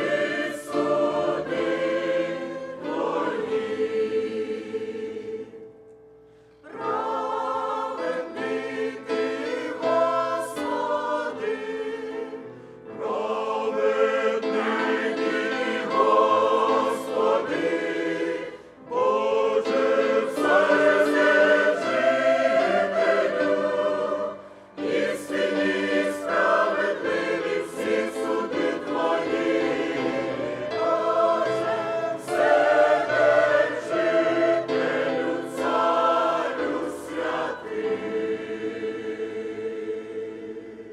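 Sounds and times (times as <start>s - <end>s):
choir singing a hymn: 0.0s - 40.9s.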